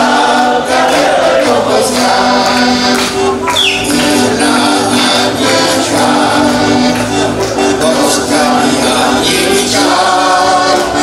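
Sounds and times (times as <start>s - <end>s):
button accordion chords: 0.0s - 11.0s.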